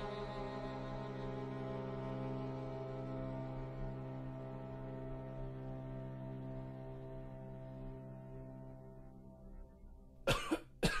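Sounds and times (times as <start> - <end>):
string quartet low chord: 0.0 - 11.0
person coughing: 10.3 - 11.0.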